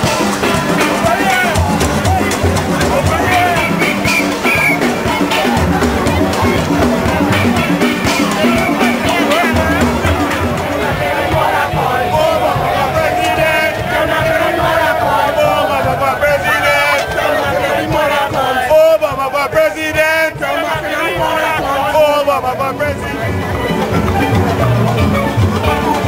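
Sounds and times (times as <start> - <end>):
crowd voices and shouts: 0.0 - 26.0
drum kit beat: 0.0 - 26.0
steel band playing: 0.0 - 26.0.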